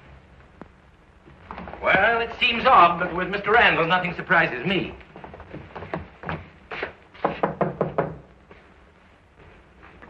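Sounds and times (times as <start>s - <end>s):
knuckles knocking on door: 7.2s - 8.2s.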